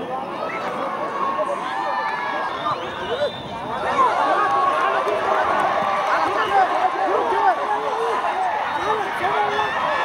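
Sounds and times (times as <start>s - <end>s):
spectators shouting: 0.4s - 10.0s.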